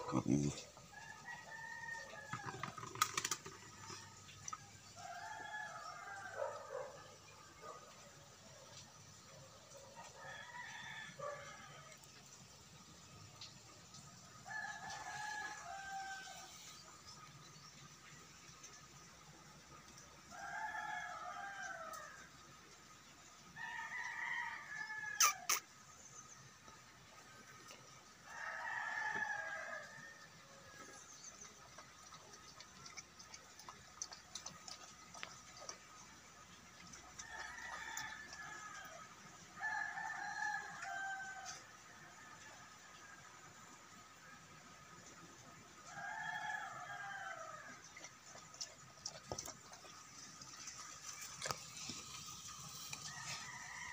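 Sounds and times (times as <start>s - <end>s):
rooster crowing: 10.1s - 11.9s, 14.4s - 16.6s, 20.3s - 22.2s, 28.2s - 30.7s, 37.2s - 43.0s, 45.8s - 47.7s, 53.0s - 53.9s
faint ticks: 21.8s - 22.1s.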